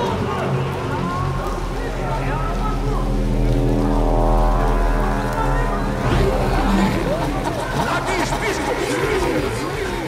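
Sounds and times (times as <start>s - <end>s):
sustained synthesizer chord: 0.0s - 9.0s
constant low rumble: 0.0s - 10.0s
crowd voices: 0.0s - 10.0s
deep synthesizer drone: 0.0s - 10.0s.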